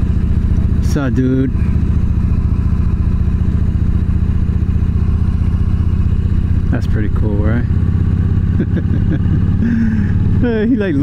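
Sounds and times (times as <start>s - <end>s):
motorcycle engine running steadily: 0.0s - 11.0s.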